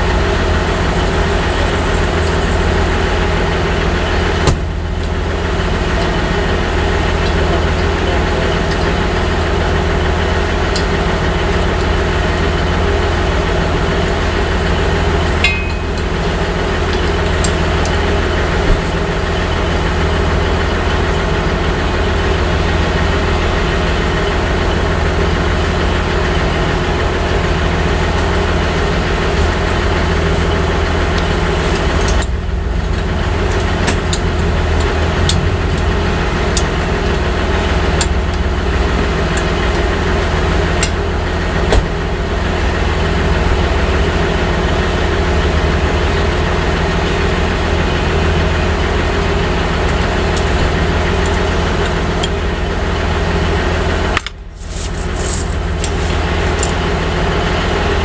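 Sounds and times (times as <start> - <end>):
diesel truck engine idling: 0.0 - 58.0
hand tools clicking: 54.2 - 56.8.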